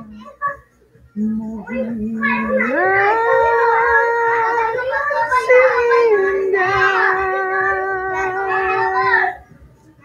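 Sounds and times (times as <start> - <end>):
person singing a long note: 5.7 - 9.0.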